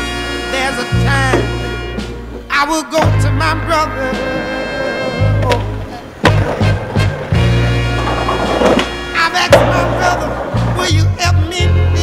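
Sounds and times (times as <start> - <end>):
background music: 0.0 - 12.0
skateboard clacking: 0.5 - 3.2, 4.2 - 12.0
skateboard wheels rolling: 0.7 - 12.0.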